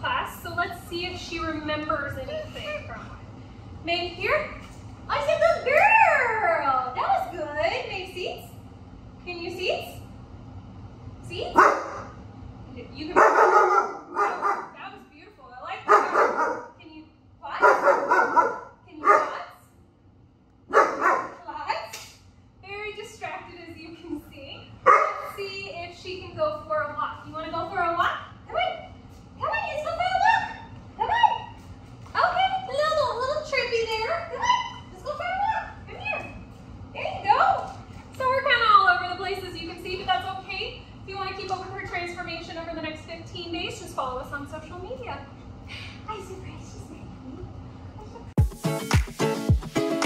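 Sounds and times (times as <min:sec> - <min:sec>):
puppy barking: 0:11.6 - 0:12.1, 0:13.2 - 0:14.8, 0:15.8 - 0:16.7, 0:17.6 - 0:19.4, 0:20.7 - 0:21.4, 0:24.9 - 0:25.3.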